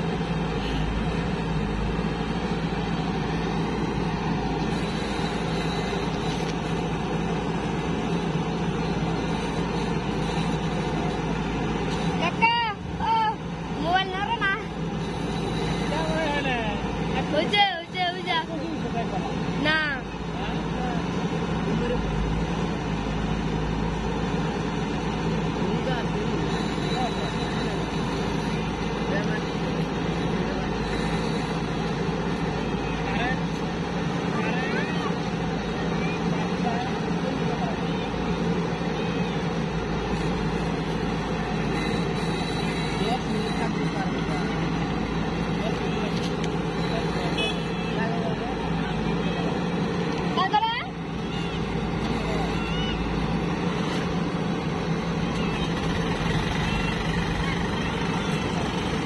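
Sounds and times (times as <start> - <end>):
diesel engine running: 0.0 - 59.0
voices calling out: 0.0 - 59.0.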